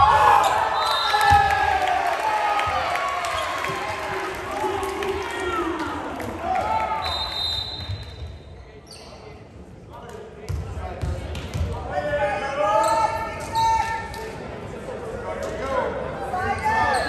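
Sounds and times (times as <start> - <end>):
high whistle: 7.0 - 8.3.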